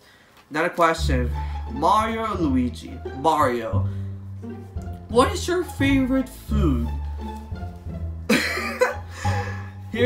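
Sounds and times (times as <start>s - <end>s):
background music with bass line: 1.0s - 10.0s
man laughing: 8.3s - 9.7s.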